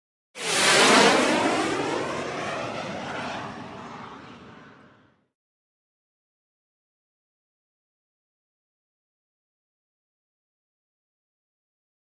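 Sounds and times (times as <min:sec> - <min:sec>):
whoosh with falling tone: 0:00.4 - 0:05.1.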